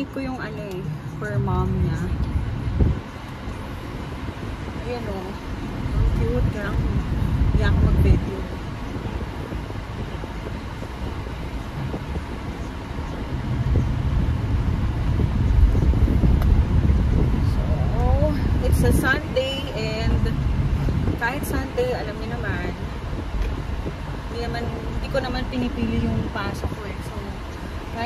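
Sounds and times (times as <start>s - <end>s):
woman speaking: 0.0s - 2.2s, 4.8s - 5.4s, 6.2s - 8.6s, 17.8s - 20.4s, 21.1s - 22.9s, 24.3s - 28.0s
car cabin road and engine rumble: 0.0s - 28.0s.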